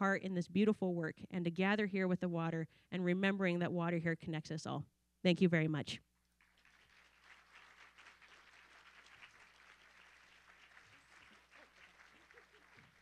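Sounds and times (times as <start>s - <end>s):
audience applause: 6.4s - 13.0s.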